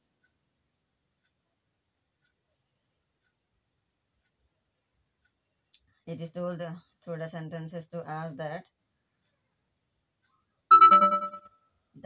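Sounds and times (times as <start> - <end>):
musical chime: 10.7 - 11.5.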